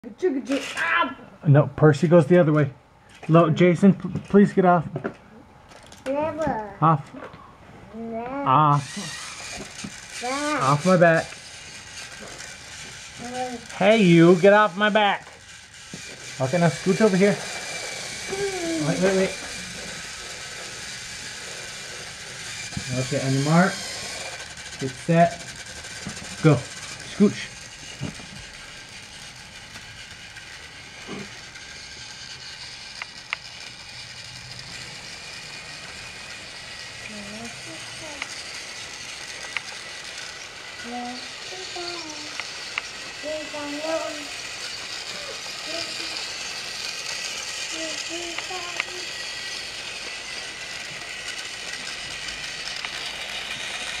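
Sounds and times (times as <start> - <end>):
toy train motor whirring: 0.1 - 54.0.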